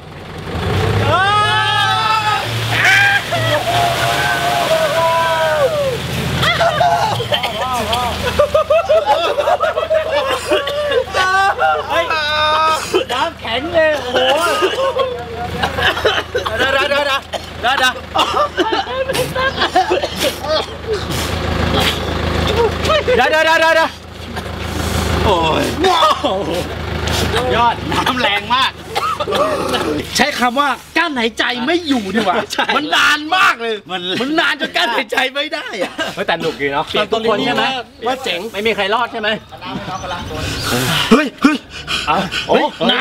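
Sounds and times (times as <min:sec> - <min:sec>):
truck engine idling: 0:00.0 - 0:43.0
men shouting: 0:00.9 - 0:21.1, 0:25.1 - 0:30.6, 0:31.4 - 0:43.0
voices and exclamations: 0:01.0 - 0:30.6, 0:31.6 - 0:35.2
men talking: 0:01.1 - 0:21.1, 0:22.4 - 0:43.0.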